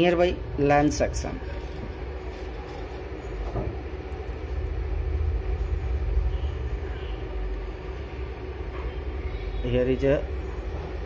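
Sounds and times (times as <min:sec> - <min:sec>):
faint steady hum: 0:00.0 - 0:11.0
low rumble: 0:04.3 - 0:08.3.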